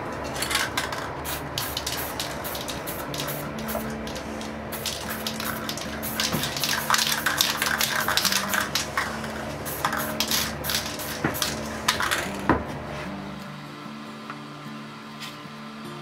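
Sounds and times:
spray paint can hissing: 0.2 - 12.5.

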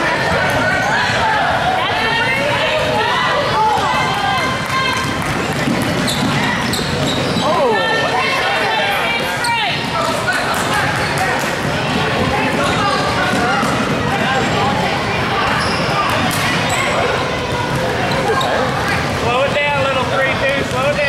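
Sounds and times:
mix of voices: 0.0 - 21.0
basketball dribbling: 3.8 - 7.5.

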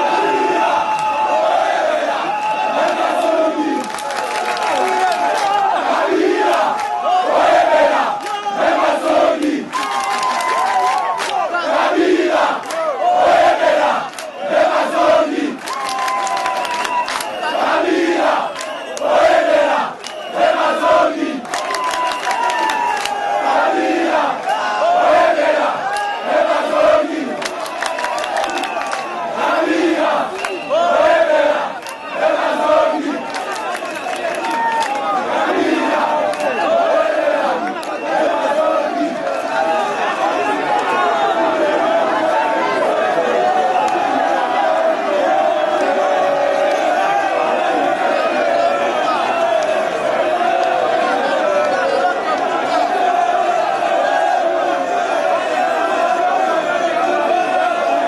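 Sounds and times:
crowd chanting rhythmically: 0.0 - 58.0
crowd shouting and cheering: 0.0 - 58.0.

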